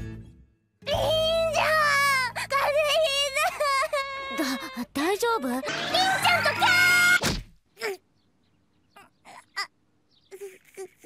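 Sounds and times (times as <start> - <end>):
soft background music: 0.0 - 3.4
girl's whiny voice acting: 0.9 - 7.2.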